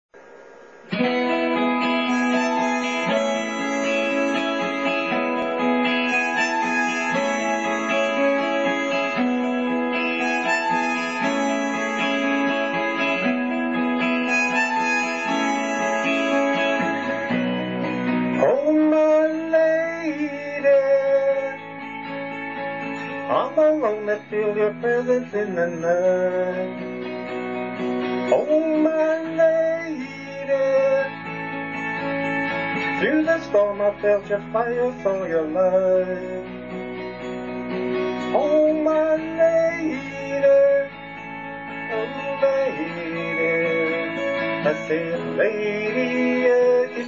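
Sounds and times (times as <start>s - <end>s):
instrumental karaoke backing track: 0.2s - 47.0s.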